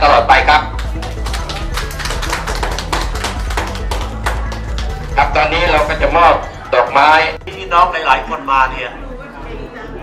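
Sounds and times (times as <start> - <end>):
background music: 0.0 - 10.0
small group clapping: 0.4 - 5.8.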